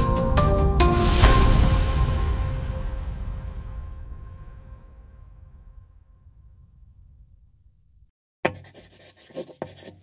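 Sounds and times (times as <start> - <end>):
scratchy rubbing strokes: 8.5 - 10.0.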